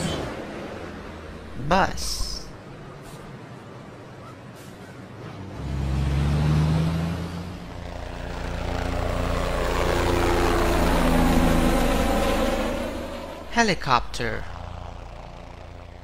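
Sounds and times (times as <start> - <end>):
bus engine accelerating: 2.6 - 16.0.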